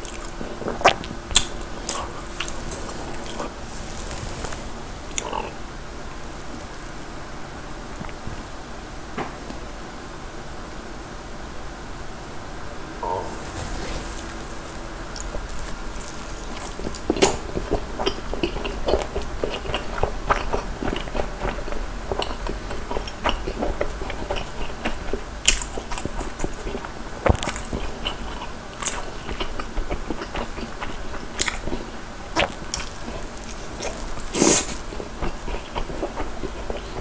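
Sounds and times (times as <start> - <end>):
close chewing with wet mouth clicks: 15.2 - 37.0.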